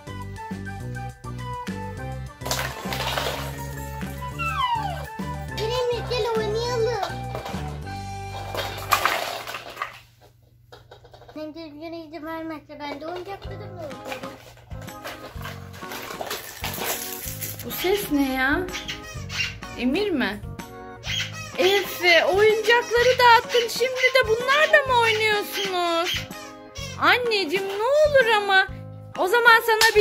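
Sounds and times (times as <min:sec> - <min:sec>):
background music: 0:00.0 - 0:09.1, 0:13.0 - 0:30.0
plastic toys clattering: 0:02.4 - 0:03.9, 0:07.0 - 0:10.3, 0:12.9 - 0:18.1.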